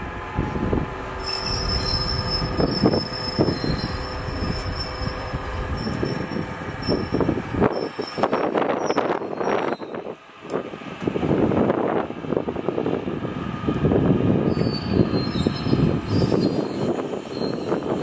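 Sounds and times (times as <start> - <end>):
train rolling rumble: 0.0 - 18.0
train wheels squealing: 1.2 - 10.0, 14.5 - 18.0
clatter of train wheels: 1.2 - 10.1, 14.5 - 18.0.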